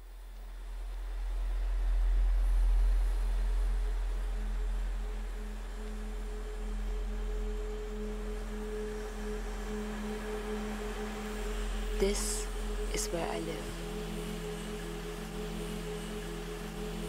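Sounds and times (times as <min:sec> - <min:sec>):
low hum: 0:00.0 - 0:17.0
pure tone drone: 0:00.0 - 0:17.0.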